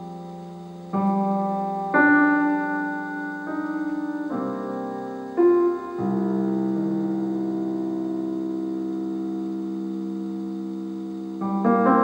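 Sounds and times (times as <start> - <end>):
electronic keyboard piano chord: 0.0 - 12.0.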